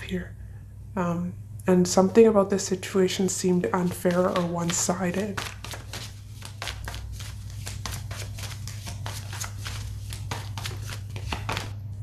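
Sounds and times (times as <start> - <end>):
steady low hum: 0.0 - 12.0
cards being shuffled: 3.8 - 11.8.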